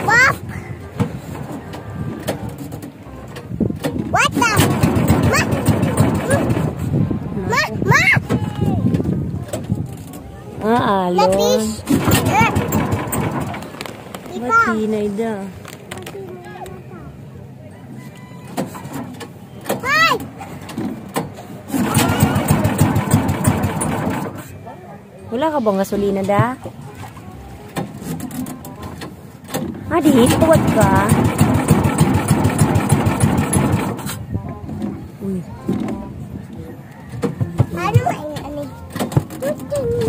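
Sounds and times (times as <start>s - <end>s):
rough background noise: 0.0s - 40.0s.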